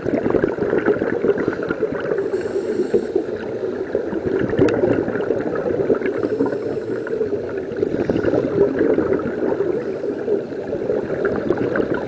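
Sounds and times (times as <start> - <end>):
underwater air bubbles: 0.0 - 12.0.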